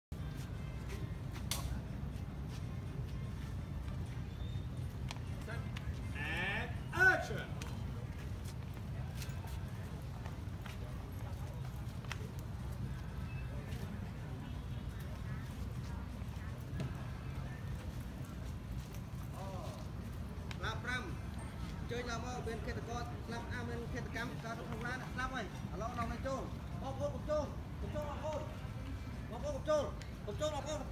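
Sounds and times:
faint distant voices: 0.1s - 30.9s
low street rumble: 0.1s - 30.9s.

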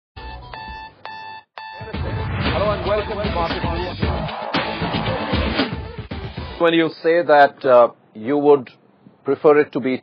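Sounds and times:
sharp hits: 1.9s - 6.6s.

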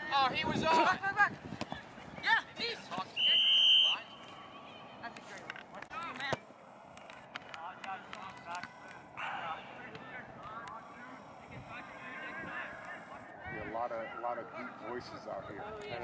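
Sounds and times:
referee's whistle blast: 3.2s - 4.2s.

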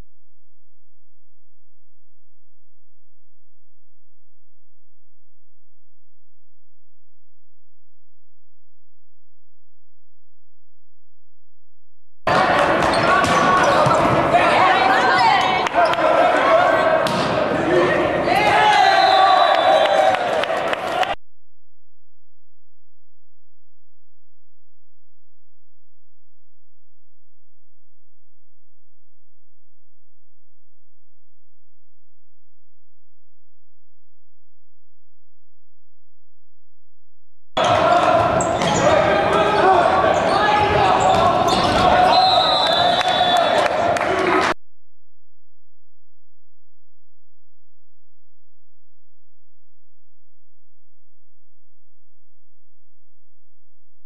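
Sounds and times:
volleyball hits: 12.3s - 16.2s, 16.9s - 17.6s
players shouting and calling: 12.3s - 21.2s, 37.6s - 44.6s
volleyball being hit: 17.0s - 17.4s.

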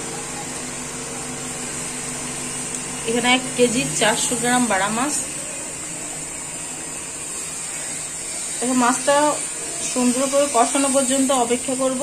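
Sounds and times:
curry hissing in hot pan: 1.7s - 12.0s.

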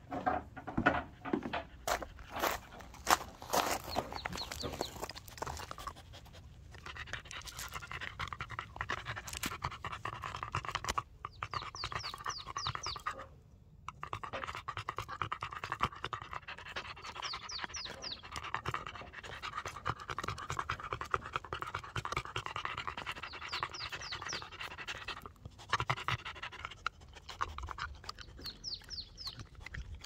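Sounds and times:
dog panting: 0.7s - 30.0s
dog chewing clicks: 17.8s - 30.0s.

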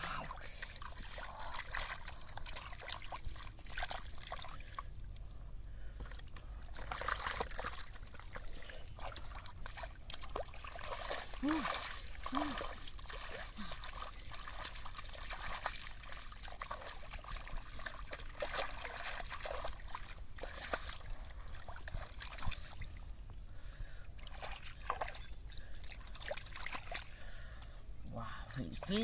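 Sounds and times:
hands splashing in muddy water: 6.0s - 22.9s
short exclamation: 11.4s - 12.7s.

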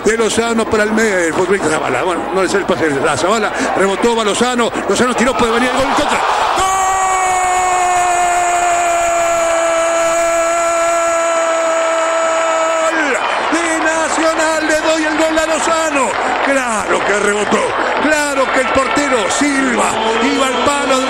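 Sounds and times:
fast excited shouting: 4.3s - 21.0s
commentator's long goal shout: 5.2s - 21.0s.

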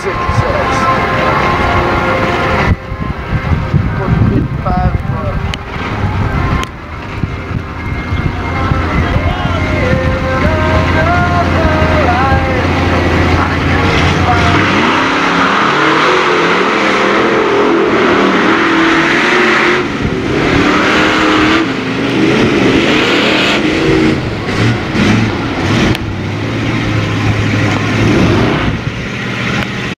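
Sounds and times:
truck engines revving: 0.0s - 30.0s.

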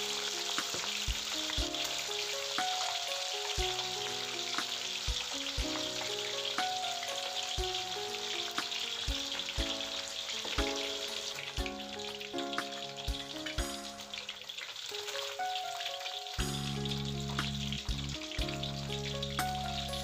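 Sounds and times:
background music with beat: 0.0s - 14.2s, 16.4s - 20.0s
hot oil sizzling and bubbling: 0.0s - 20.0s.

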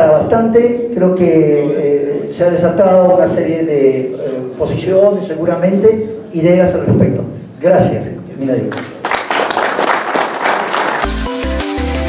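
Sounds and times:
audience applauding: 8.7s - 11.4s
electronic music with heavy bass: 11.0s - 12.0s.

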